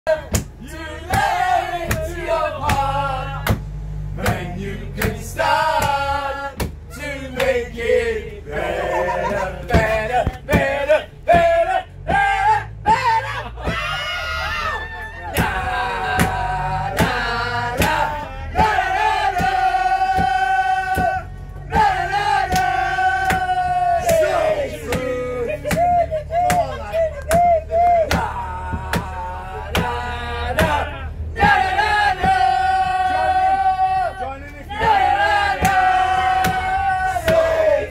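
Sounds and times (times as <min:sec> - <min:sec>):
group chanting loudly: 0:00.2 - 0:03.6, 0:04.2 - 0:13.3, 0:15.3 - 0:37.9
people clapping: 0:15.3 - 0:17.2, 0:22.4 - 0:30.8, 0:35.6 - 0:36.6.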